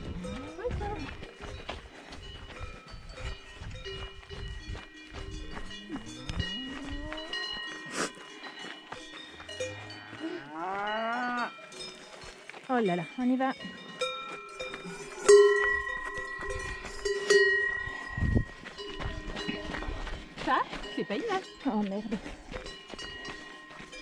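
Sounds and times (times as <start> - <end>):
cowbells ringing: 0.0 - 24.0
cows mooing: 5.6 - 7.8, 9.5 - 11.6.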